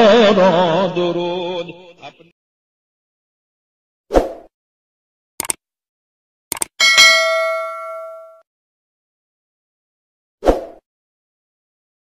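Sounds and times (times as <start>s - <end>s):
notification bell chime: 6.8s - 8.4s.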